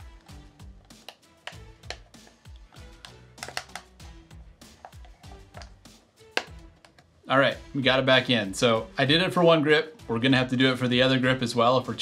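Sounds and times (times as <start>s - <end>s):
rubber cover clicks and taps: 0.0s - 7.2s
quiet background music with beat: 0.0s - 12.0s.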